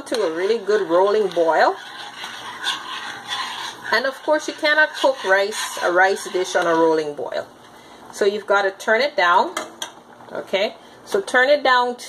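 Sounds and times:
pot bubbling at a rolling boil: 0:00.0 - 0:12.0.

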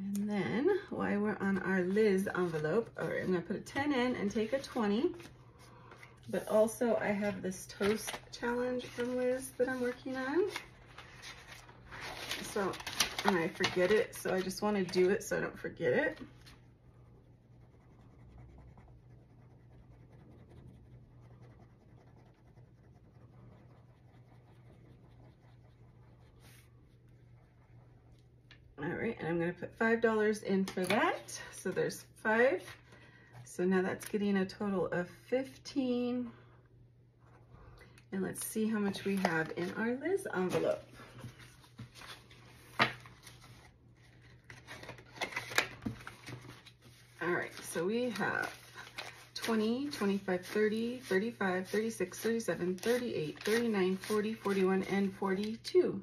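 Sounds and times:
faint low hum: 0:00.0 - 0:56.0
paper and plastic rustling: 0:04.3 - 0:15.3, 0:38.9 - 0:55.6
pencil scratching on paper: 0:16.5 - 0:28.2.

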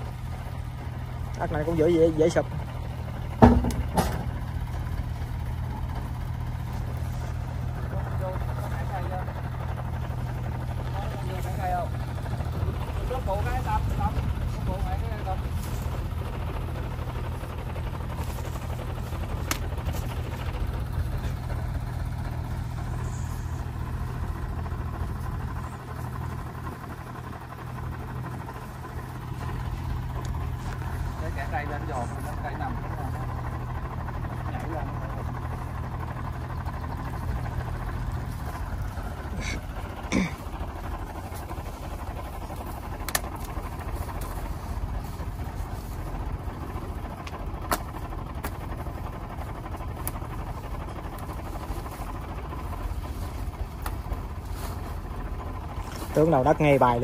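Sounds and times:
tractor diesel engine idling: 0:00.0 - 0:57.0
sharp knock: 0:03.4 - 0:04.2.

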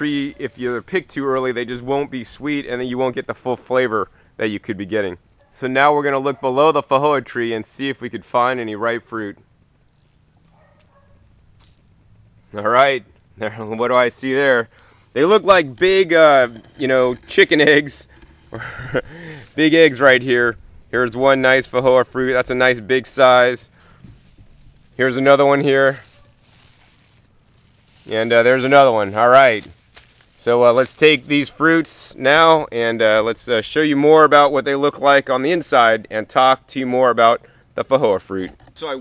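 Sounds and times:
leaves rustling: 0:11.5 - 0:32.0.

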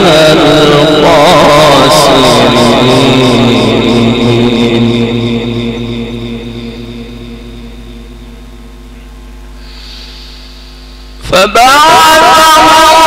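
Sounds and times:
man reciting over loudspeaker: 0:00.0 - 0:08.6, 0:11.2 - 0:13.0
sound system hum: 0:00.0 - 0:13.0.

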